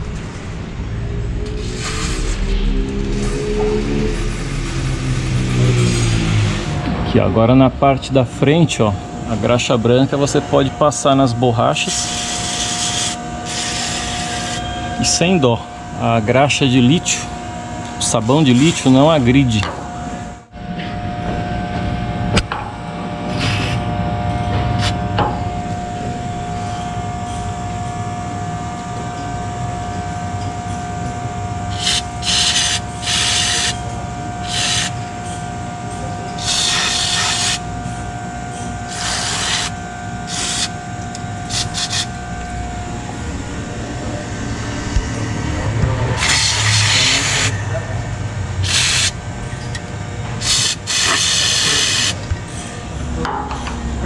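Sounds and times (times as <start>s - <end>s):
steady low background hum: 0.0s - 54.0s.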